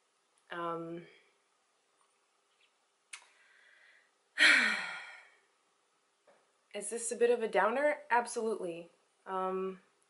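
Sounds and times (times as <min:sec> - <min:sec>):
woman sighing: 0:04.4 - 0:05.4.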